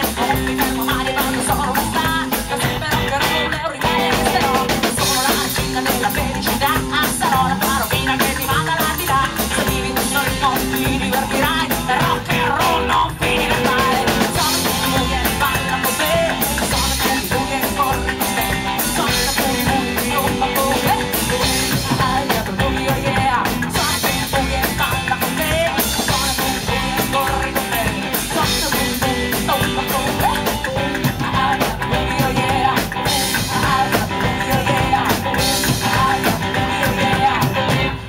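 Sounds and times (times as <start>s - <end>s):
drums: 0.0s - 38.0s
electric guitar: 0.0s - 38.0s
upright double bass: 0.0s - 38.0s
woman singing: 0.0s - 38.0s.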